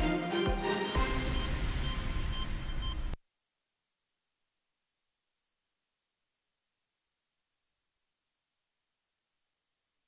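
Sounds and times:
theme music with heavy bass: 0.0s - 3.0s.

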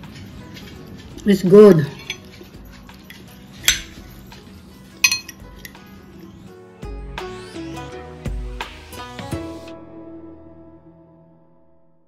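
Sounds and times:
cutlery clinking on ceramic plate: 1.7s - 4.0s, 5.0s - 5.8s.

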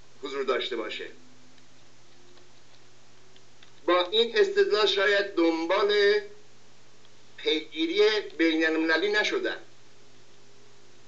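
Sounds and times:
low room hum: 0.0s - 11.0s
man speaking: 0.2s - 1.2s, 3.9s - 6.4s, 7.4s - 9.7s
faint clicks: 1.6s - 3.9s.

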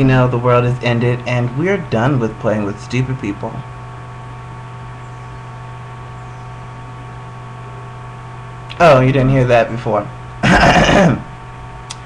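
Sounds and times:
steady low hum: 0.0s - 12.0s
man clearing his throat: 10.4s - 11.3s.

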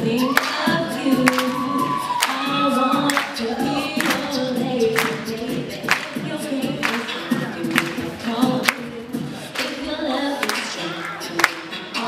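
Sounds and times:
beatboxing: 0.0s - 12.0s
woman singing: 0.0s - 12.0s.

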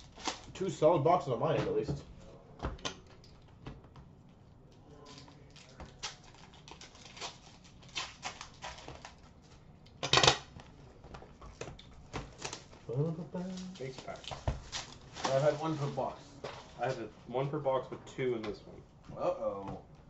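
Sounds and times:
cards rustling on glass counter: 4.9s - 17.1s.

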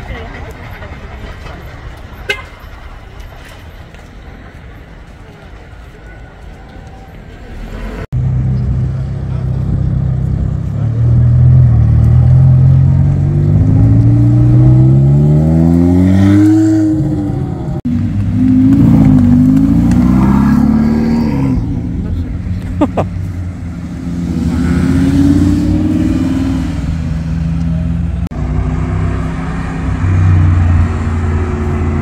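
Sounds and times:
sports car accelerating: 7.5s - 32.0s
sports car engine revving: 8.2s - 32.0s.

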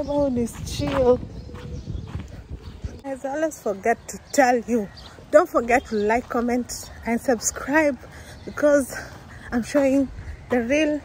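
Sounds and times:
low wind rumble on microphone: 0.0s - 11.0s
footsteps walking: 0.4s - 3.4s.

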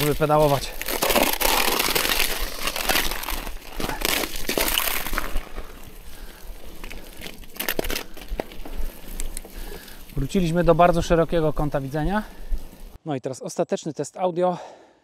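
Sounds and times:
bicycle tyres rolling on mud: 0.0s - 13.0s.

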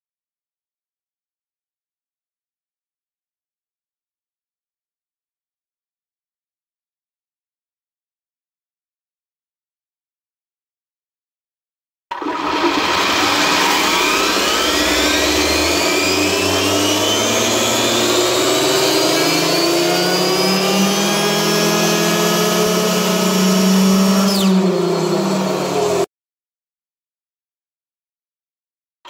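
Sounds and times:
electric motor whining: 12.2s - 26.1s.

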